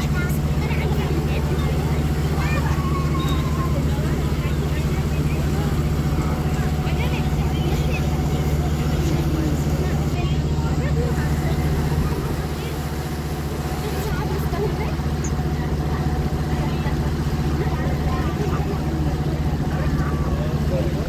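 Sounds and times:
boat engine droning: 0.0s - 21.0s.

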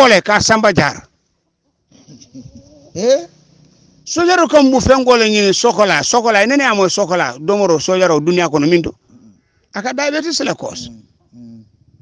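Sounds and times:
faint wavering animal calls: 1.3s - 4.1s, 10.8s - 12.0s.

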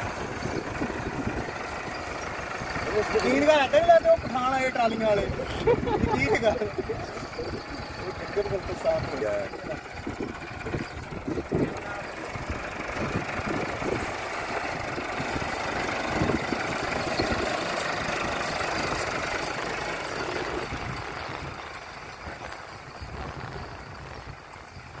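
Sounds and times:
tractor diesel engine running: 0.0s - 25.0s.

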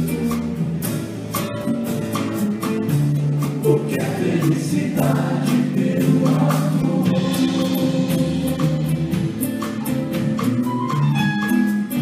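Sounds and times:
live rock band: 0.0s - 12.0s
person singing: 3.6s - 9.2s.

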